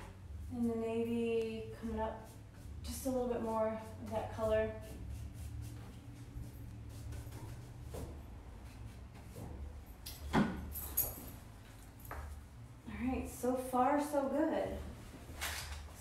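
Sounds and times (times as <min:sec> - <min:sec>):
low steady hum: 0:00.0 - 0:16.0
paintbrush strokes on wood: 0:00.1 - 0:09.7.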